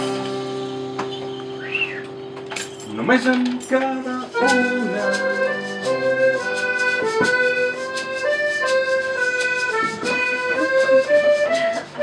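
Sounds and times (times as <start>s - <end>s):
live band sustained chord: 0.0s - 2.6s.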